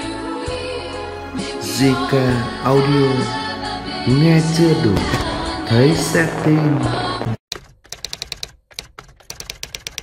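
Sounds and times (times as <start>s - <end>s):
keyboard typing clicks: 7.5s - 10.0s.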